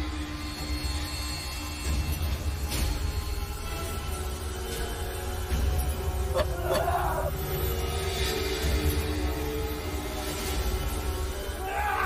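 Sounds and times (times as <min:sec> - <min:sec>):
dramatic score with low drone: 0:00.0 - 0:12.0.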